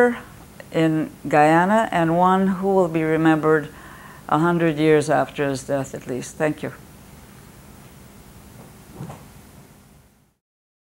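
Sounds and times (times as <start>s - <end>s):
steady low hum: 0.0s - 10.4s.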